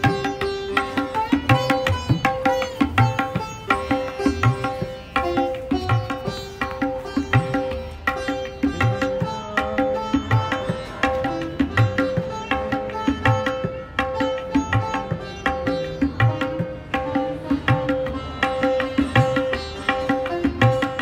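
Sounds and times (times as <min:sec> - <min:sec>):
plucked-string melody: 0:00.0 - 0:21.0.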